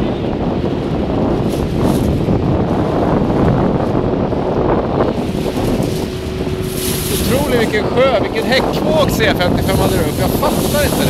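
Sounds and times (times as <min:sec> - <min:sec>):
water rushing over choppy waves: 0:00.0 - 0:11.0
wind buffeting microphone: 0:00.0 - 0:11.0.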